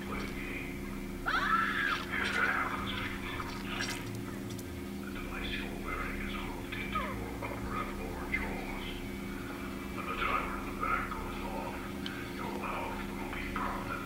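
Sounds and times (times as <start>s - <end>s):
faint voice-like sounds: 0.0s - 4.2s, 5.0s - 14.0s
low steady drone: 0.0s - 14.0s.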